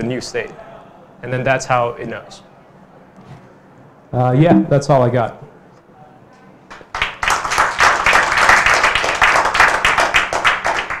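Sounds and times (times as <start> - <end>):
audience applauding: 6.9 - 11.0.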